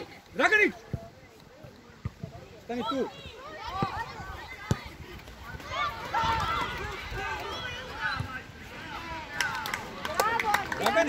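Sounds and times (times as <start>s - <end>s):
girls shouting: 5.6s - 8.0s.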